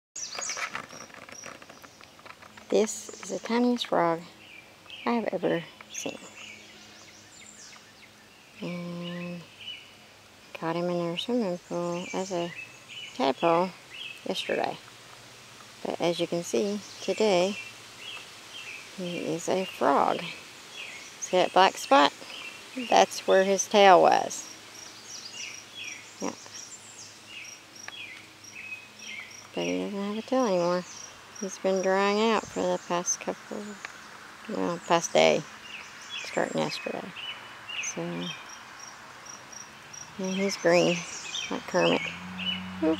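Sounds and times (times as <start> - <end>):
light rustling: 0.2 - 4.0
birds chirping: 0.2 - 42.9
insects calling faintly: 0.2 - 42.9.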